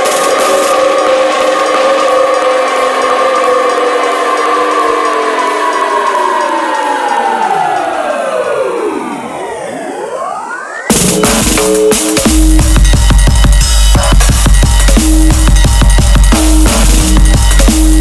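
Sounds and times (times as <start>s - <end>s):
rising synth sweeps: 0.0s - 18.0s
whistle-like synthesizer chord: 0.0s - 18.0s.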